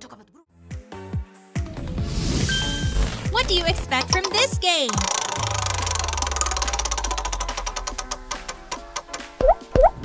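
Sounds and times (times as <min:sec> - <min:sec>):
prize wheel clicking ticks: 0:03.7 - 0:09.4.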